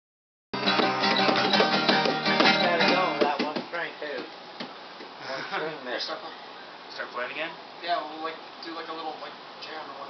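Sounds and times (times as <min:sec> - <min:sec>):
acoustic guitar strumming: 0:00.6 - 0:03.7
bongos tapping: 0:00.6 - 0:05.1.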